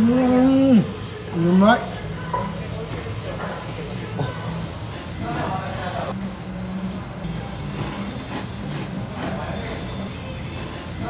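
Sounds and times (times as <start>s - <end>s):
man slurping noodles: 7.7s - 9.8s.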